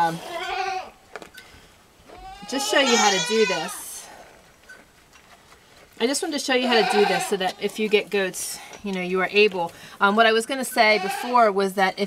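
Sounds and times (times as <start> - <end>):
goat bleating: 0.2 - 1.0, 2.1 - 4.0, 6.6 - 7.7, 10.8 - 11.4.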